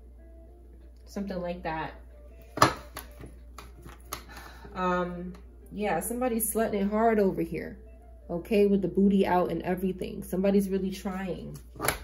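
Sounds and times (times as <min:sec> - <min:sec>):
cards clicking: 0:02.6 - 0:04.5, 0:11.6 - 0:12.0.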